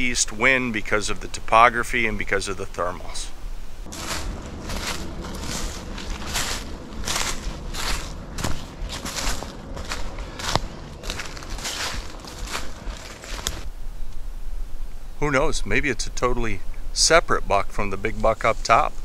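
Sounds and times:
footsteps crunching through dry leaves: 3.8 - 13.7.

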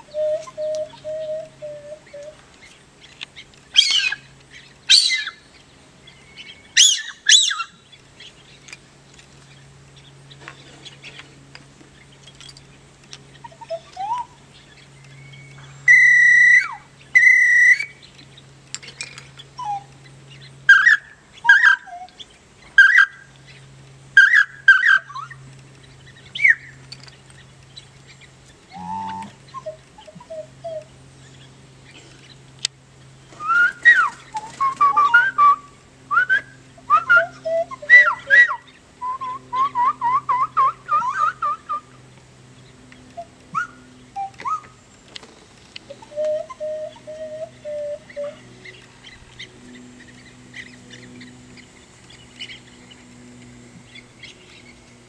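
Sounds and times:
bird-call whistles: 0.0 - 2.4, 3.8 - 4.2, 4.9 - 5.4, 6.1 - 7.7, 13.4 - 14.4, 15.1 - 18.0, 19.6 - 19.9, 28.7 - 30.9, 33.4 - 42.0, 43.1 - 44.8, 45.9 - 48.4
low steady hum: 0.0 - 55.0.

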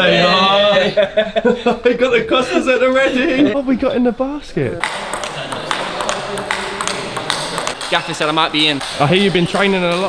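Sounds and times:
ball bouncing on table: 4.8 - 10.0
table tennis ball clicking off bats: 4.8 - 10.0.

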